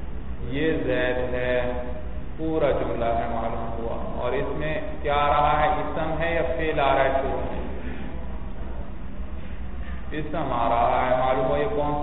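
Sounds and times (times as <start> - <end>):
steady low hum: 0.0 - 12.0
man chanting: 0.4 - 7.8, 10.1 - 12.0.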